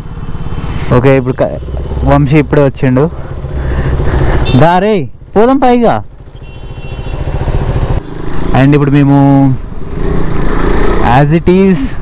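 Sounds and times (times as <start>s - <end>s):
motorcycle engine running: 1.2s - 11.0s.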